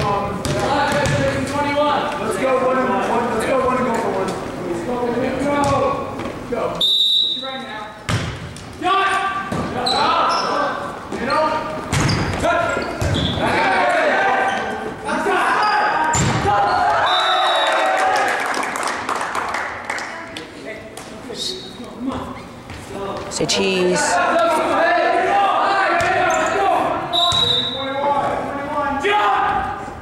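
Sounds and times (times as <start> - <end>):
ball striking floor: 0.0 - 1.5, 8.1 - 8.7, 9.5 - 9.8, 11.9 - 13.4, 16.1 - 16.5
referee's whistle: 6.8 - 7.6, 16.9 - 17.8, 27.1 - 27.9
players shouting: 12.4 - 18.4, 24.2 - 27.7.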